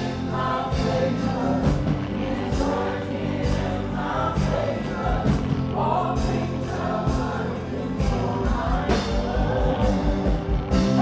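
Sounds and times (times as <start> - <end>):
choir singing: 0.0 - 11.0
gospel band playing: 0.0 - 11.0.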